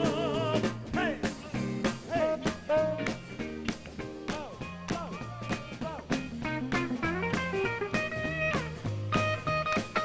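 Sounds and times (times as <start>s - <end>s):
bass guitar: 0.0s - 10.0s
drum kit: 0.0s - 10.0s
electric guitar lead: 1.6s - 10.0s.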